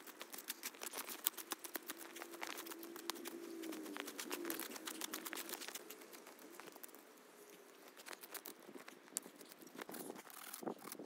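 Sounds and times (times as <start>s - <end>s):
faint wavering hum: 0.0s - 10.8s
hand tool scraping frozen ground: 7.6s - 11.0s.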